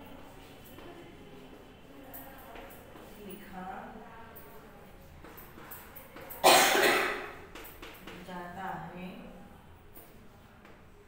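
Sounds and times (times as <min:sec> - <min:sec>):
woman coughing: 0:06.4 - 0:07.3.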